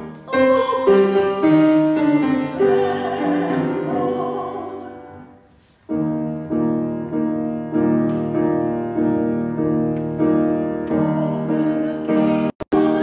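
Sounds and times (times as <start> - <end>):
piano repeated chords: 0.0 - 13.0.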